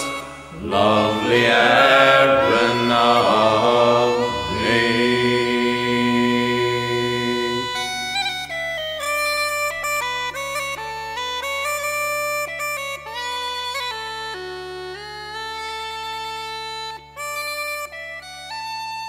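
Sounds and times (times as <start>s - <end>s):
held sung note: 0.0s - 8.0s
bagpipes playing melody: 0.0s - 19.0s.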